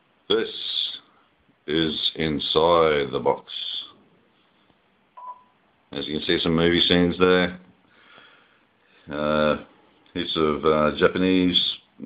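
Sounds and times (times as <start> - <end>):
short electronic beep: 5.2 - 5.6.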